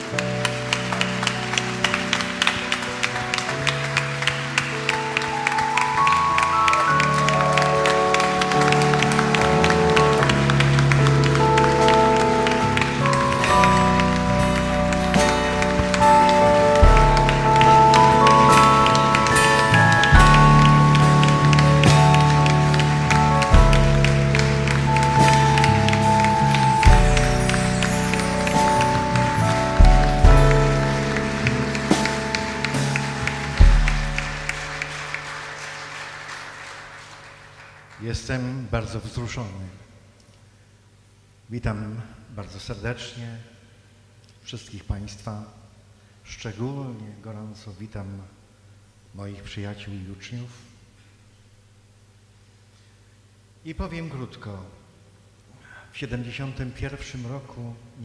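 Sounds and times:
live band playing held chords: 0.0 - 37.9
people clapping along: 0.0 - 38.8
drum and bass hits: 14.4 - 34.9.

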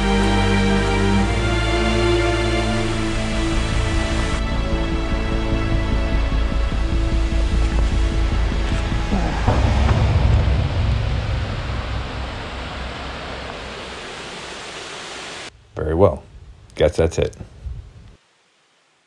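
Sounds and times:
background music: 0.0 - 12.7
creek water rushing: 0.0 - 15.5.

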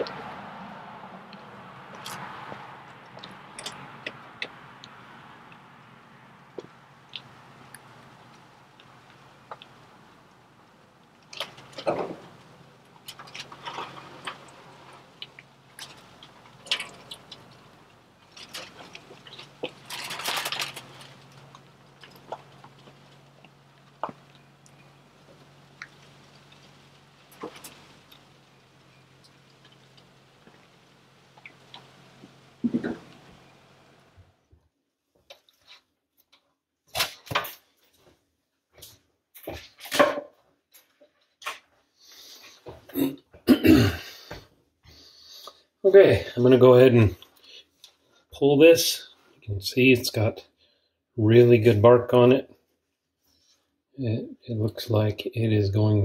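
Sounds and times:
low steady hum: 0.0 - 34.5
foil crinkling and rustling: 13.0 - 30.1
foil pans and racks handled: 18.3 - 23.0, 36.9 - 37.7.

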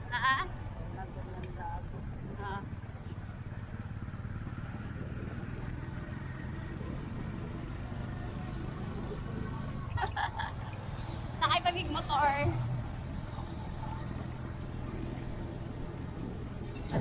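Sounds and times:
motorcycle engine running: 0.0 - 17.0
wind and road noise: 0.0 - 17.0.

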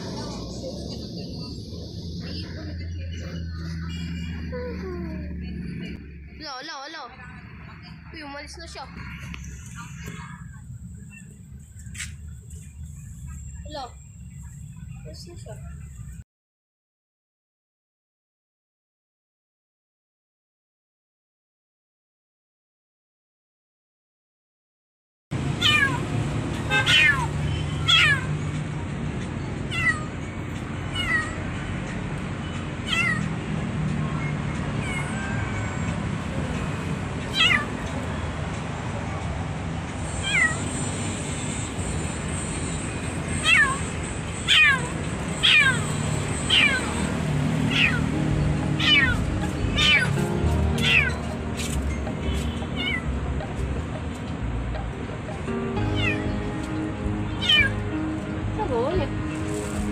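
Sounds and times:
kitten meowing: 25.6 - 26.0, 26.7 - 28.3, 29.7 - 30.1, 30.9 - 31.4, 32.8 - 33.3, 34.8 - 35.9, 37.3 - 37.8, 40.2 - 40.7, 43.4 - 43.9, 44.5 - 47.1, 47.7 - 48.0, 48.8 - 50.2, 50.8 - 51.2, 52.8 - 53.1, 55.9 - 56.3, 57.4 - 57.8.

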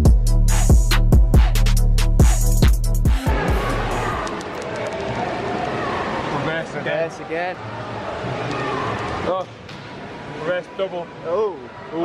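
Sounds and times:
indistinct voices echoing: 3.2 - 12.0
swimming pool hall background noise: 3.2 - 12.0.

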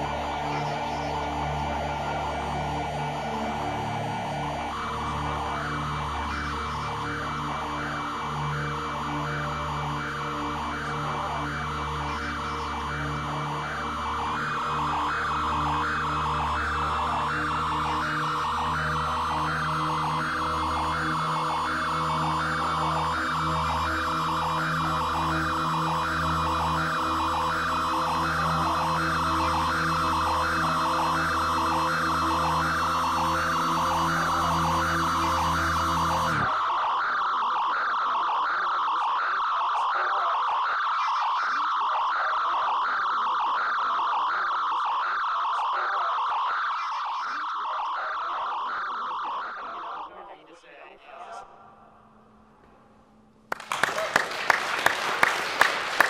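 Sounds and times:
electronic drone music: 0.0 - 49.9.

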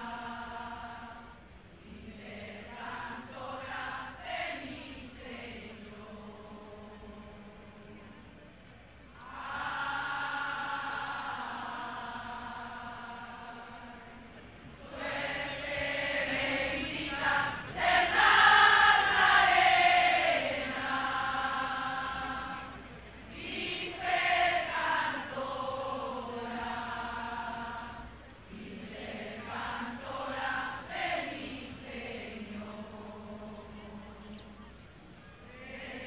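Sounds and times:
women singing a hymn: 0.0 - 8.4, 9.1 - 36.0.

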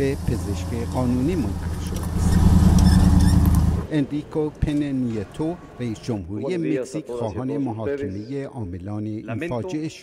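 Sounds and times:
van engine driving past: 0.0 - 3.9.

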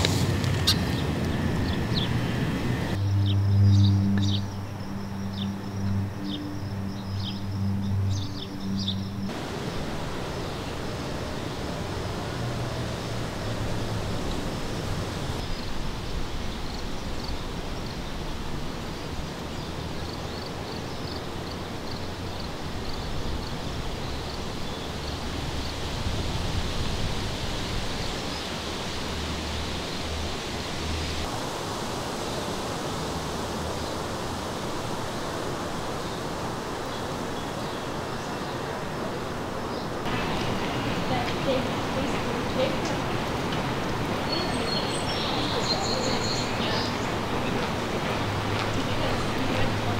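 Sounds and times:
steady rushing noise: 0.0 - 49.9.

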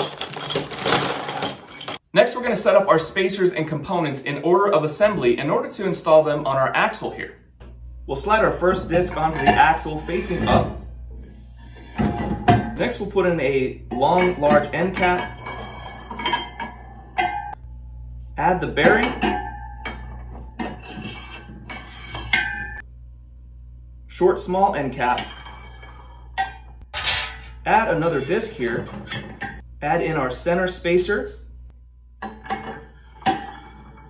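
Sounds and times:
steel parts clinking: 0.0 - 2.0.

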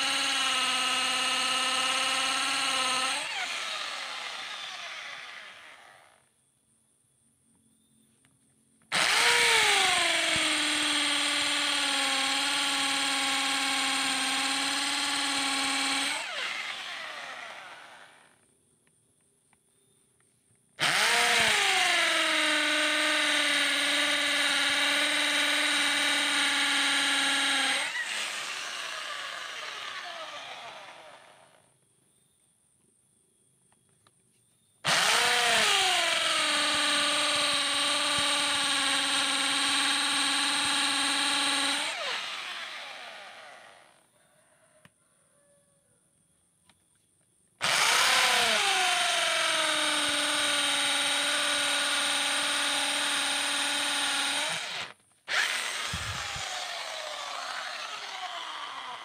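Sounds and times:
electric drill boring into wood: 0.0 - 6.3, 8.9 - 18.4, 20.8 - 31.7, 34.8 - 44.1, 47.6 - 59.0.

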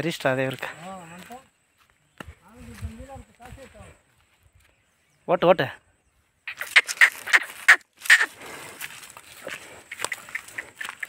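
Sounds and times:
bull hooves scraping dirt: 6.6 - 11.0.

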